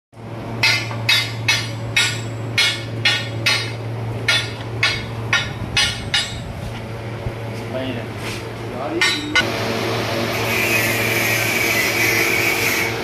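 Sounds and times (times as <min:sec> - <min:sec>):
steady low hum: 0:00.2 - 0:13.0.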